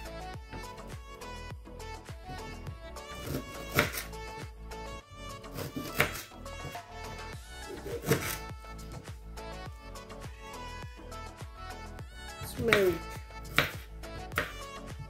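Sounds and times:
background music: 0:00.0 - 0:15.0
knife chopping on cutting board: 0:03.2 - 0:04.1, 0:05.5 - 0:06.8, 0:07.7 - 0:08.4, 0:12.6 - 0:14.6.

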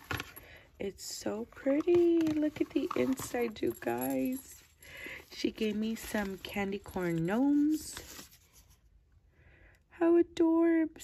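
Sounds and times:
paper rustling: 0:01.8 - 0:08.9.

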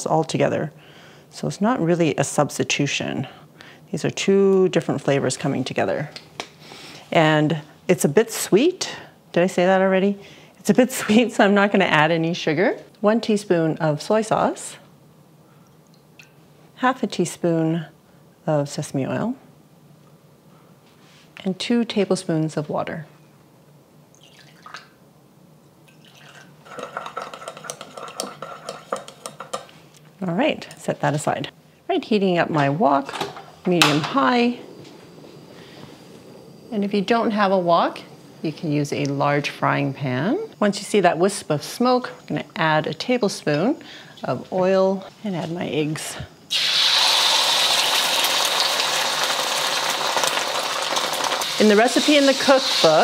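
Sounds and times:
water trickling into bowl: 0:24.1 - 0:24.9, 0:25.9 - 0:27.2
eggs sizzling in hot oil: 0:26.0 - 0:29.7, 0:46.5 - 0:53.0.

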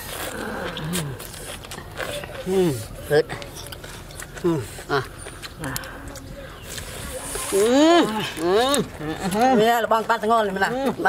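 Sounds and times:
chewing clicks: 0:05.1 - 0:07.4.

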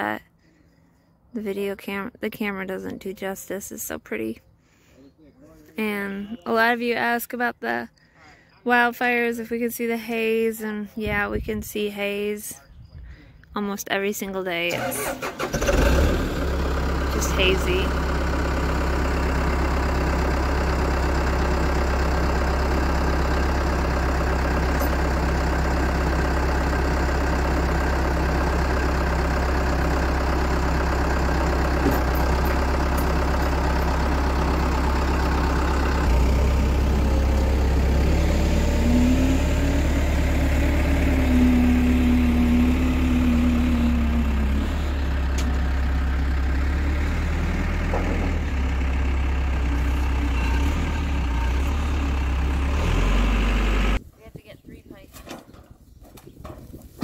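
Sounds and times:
diesel engine idling: 0:14.6 - 0:54.1
engine whine: 0:14.7 - 0:54.1.

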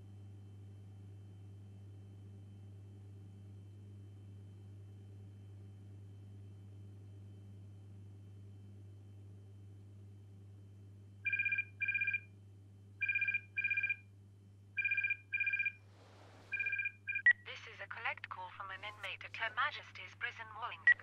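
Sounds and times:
telephone two-tone double ring: 0:11.3 - 0:12.2, 0:13.0 - 0:14.0, 0:14.8 - 0:15.8, 0:16.5 - 0:17.2.

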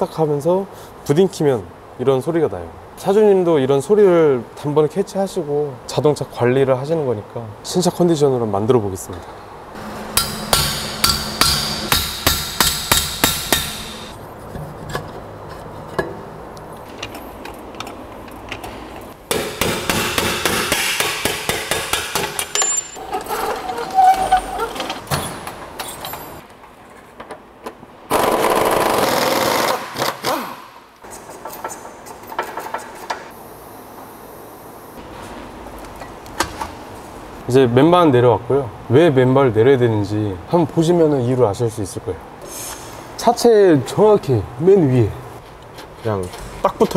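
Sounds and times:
loud steady tool noise: 0:09.8 - 0:14.2
sharp metallic strikes: 0:09.8 - 0:14.2
tools clicking and knocking: 0:16.8 - 0:23.3, 0:31.1 - 0:33.3.

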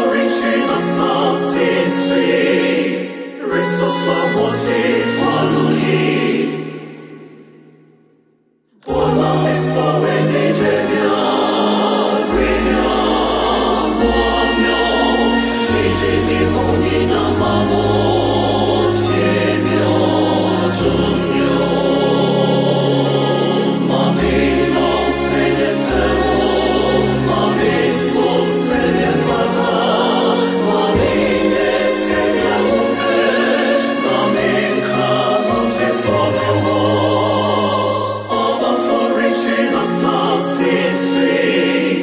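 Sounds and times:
mixed choir singing: 0:00.0 - 0:07.7, 0:08.8 - 0:42.0.

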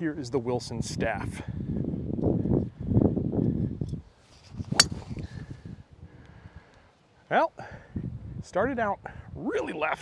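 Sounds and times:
golf driver striking ball: 0:04.7 - 0:05.2.

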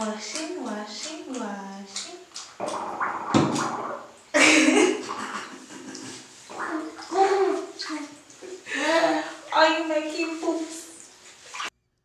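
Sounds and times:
water splashing in a bathtub: 0:00.0 - 0:11.8.

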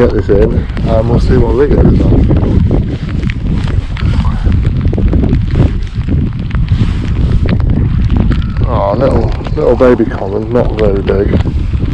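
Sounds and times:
rain: 0:00.0 - 0:11.9
wind rumbling on microphone: 0:00.0 - 0:11.9.

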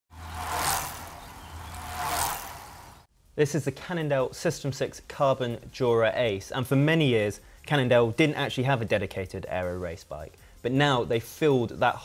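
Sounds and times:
rushing whoosh: 0:00.1 - 0:03.1.

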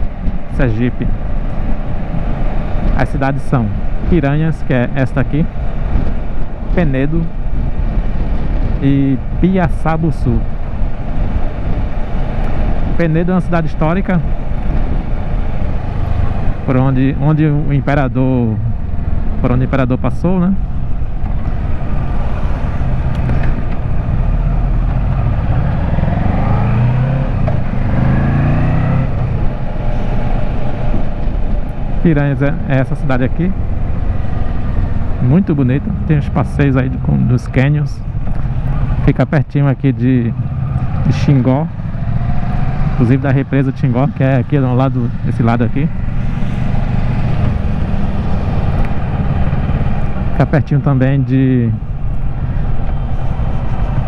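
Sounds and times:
wind noise on microphone: 0:04.8 - 0:17.2, 0:18.6 - 0:32.7, 0:45.9 - 0:54.0
motorcycle engine running: 0:20.5 - 0:39.2, 0:40.1 - 0:54.0.

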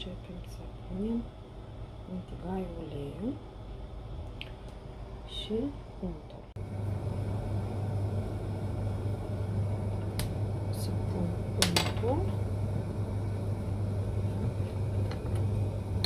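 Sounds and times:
low mechanical hum with hiss: 0:00.0 - 0:16.0.

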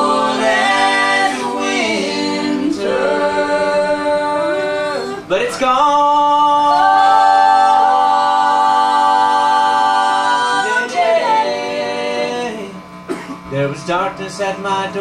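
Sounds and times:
people singing in close harmony: 0:00.0 - 0:12.8.

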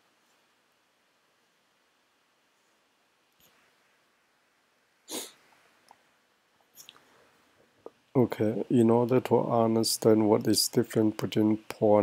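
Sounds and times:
sharp breath through nose: 0:05.1 - 0:05.4.

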